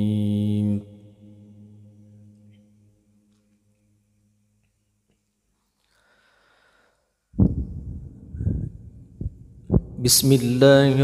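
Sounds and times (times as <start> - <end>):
breath noise on microphone: 5.8 - 9.9.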